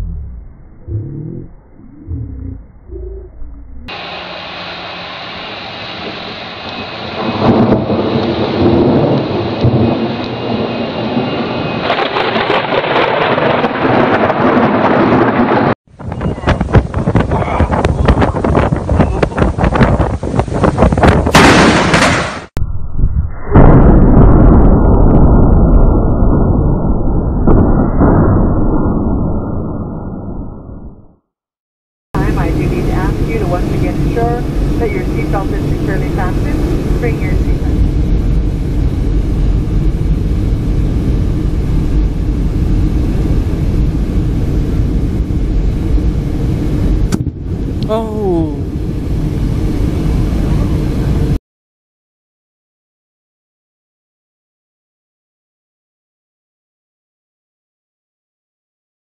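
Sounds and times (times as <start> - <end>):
wind: 0.0 - 28.2, 32.2 - 51.4
jet engines droning in cabin: 3.9 - 12.6, 32.2 - 51.4
rain: 6.6 - 15.8
loud thunderclap: 7.2 - 22.5, 23.5 - 29.6
voices: 32.2 - 37.8.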